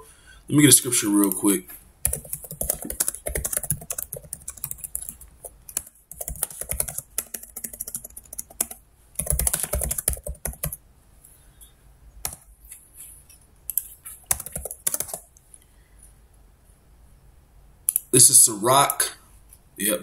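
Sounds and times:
typing on computer keyboard: 2.0s - 10.8s, 12.2s - 12.5s, 13.7s - 15.3s.

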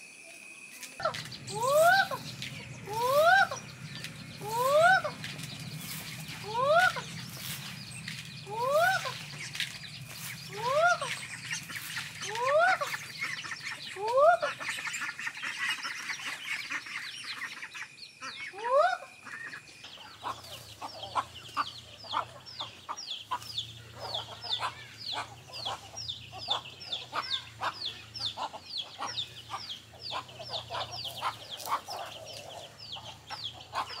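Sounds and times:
steady high hum: 0.0s - 34.0s
chicks peeping: 1.0s - 34.0s.

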